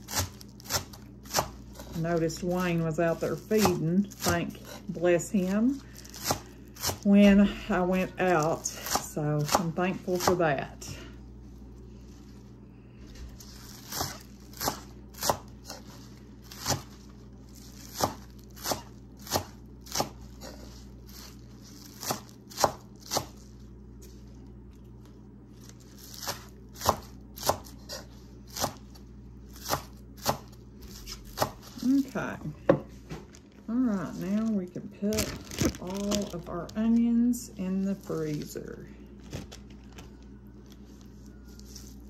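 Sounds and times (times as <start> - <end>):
knife chopping on wooden board: 0.1 - 1.6, 3.6 - 4.4, 13.9 - 15.8, 17.9 - 20.6, 22.0 - 23.4, 26.2 - 28.8, 29.6 - 31.7.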